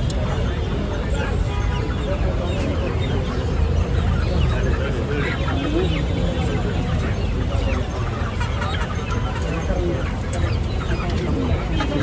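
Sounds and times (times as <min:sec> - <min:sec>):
chickens clucking: 0:00.0 - 0:12.0
crowd chatter: 0:00.0 - 0:12.0.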